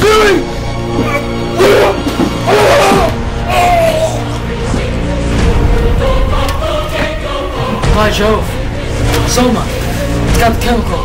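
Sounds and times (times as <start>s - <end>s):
choir singing held notes: 0.4s - 11.0s.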